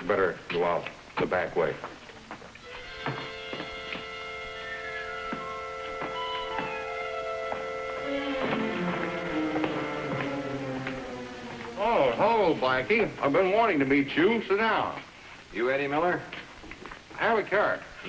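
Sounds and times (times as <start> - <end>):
background score music: 2.6 - 14.5.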